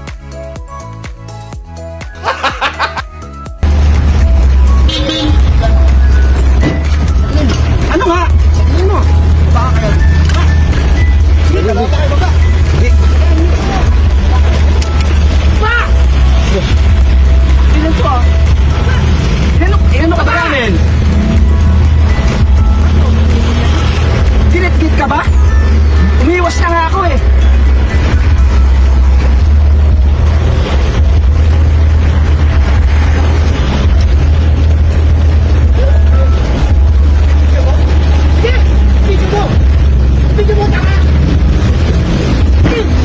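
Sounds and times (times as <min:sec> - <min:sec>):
music with heavy bass: 0:00.0 - 0:43.0
vehicle noise: 0:00.0 - 0:43.0
raised voices arguing: 0:42.5 - 0:43.0.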